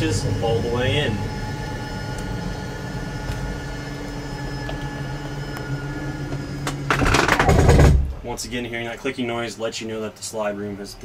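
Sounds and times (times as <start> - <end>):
electric motor running: 0.0 - 8.2.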